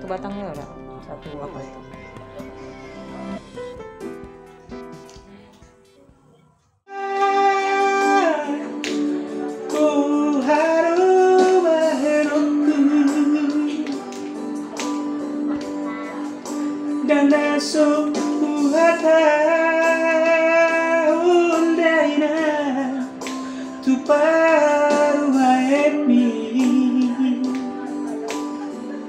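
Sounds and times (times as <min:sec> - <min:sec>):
man singing unaccompanied: 0:06.9 - 0:08.8, 0:09.4 - 0:14.5, 0:17.0 - 0:23.2, 0:23.8 - 0:28.0
person singing long notes: 0:06.9 - 0:14.6.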